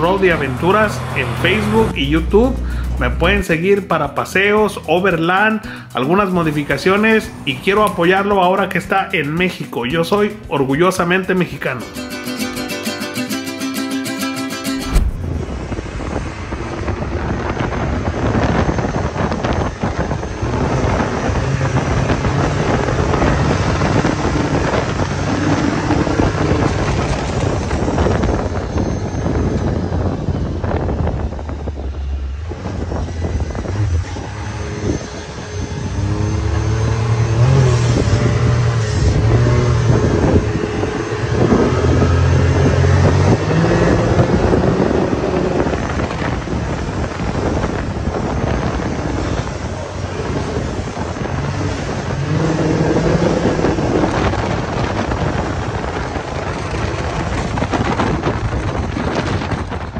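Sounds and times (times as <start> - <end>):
wind buffeting microphone: 0.0 - 5.8, 13.4 - 59.9
engine running while driving: 0.0 - 8.6, 11.9 - 59.9.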